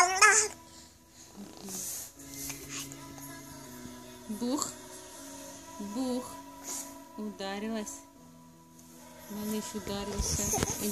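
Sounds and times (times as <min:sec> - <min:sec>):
baby vocalizing: 0:00.0 - 0:00.6.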